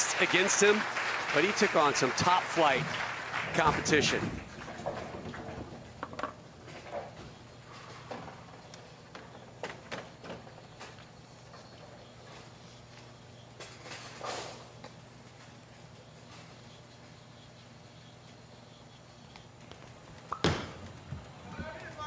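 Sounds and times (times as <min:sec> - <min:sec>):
steady low hum: 0:01.8 - 0:22.0.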